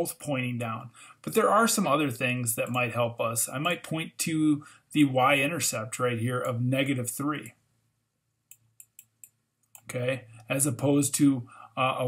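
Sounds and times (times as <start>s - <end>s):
stylus tapping on screen: 8.4s - 9.9s.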